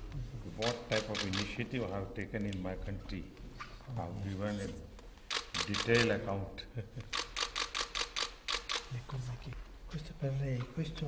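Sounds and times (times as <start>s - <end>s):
camera shutters clicking: 0.6s - 1.7s, 5.2s - 6.2s, 7.0s - 9.0s.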